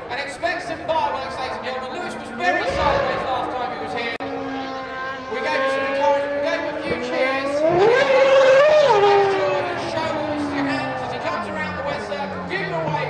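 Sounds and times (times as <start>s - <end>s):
racing car engine at speed: 0.0s - 13.0s.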